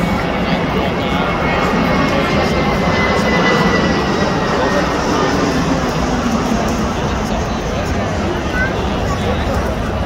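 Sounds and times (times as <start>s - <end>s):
crowd murmur: 0.0s - 10.0s
jet airliner passing overhead: 0.0s - 10.0s.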